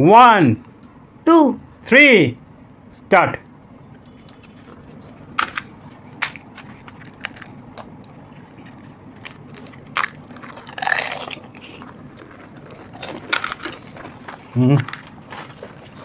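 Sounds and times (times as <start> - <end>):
crisp shells cracking and crunching: 5.2 - 16.0.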